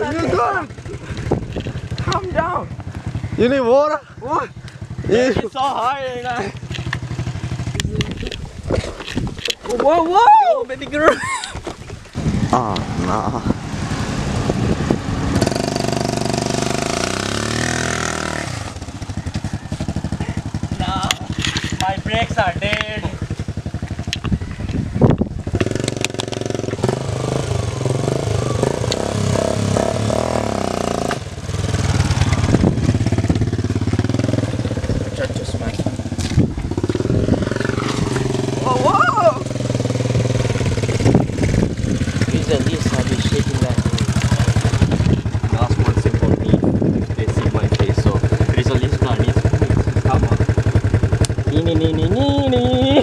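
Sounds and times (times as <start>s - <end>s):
voices: 0.0s - 8.5s, 9.4s - 11.6s, 12.2s - 13.7s, 19.0s - 24.8s, 33.4s - 39.7s, 42.0s - 53.0s
small motorcycle engine running: 12.1s - 53.0s.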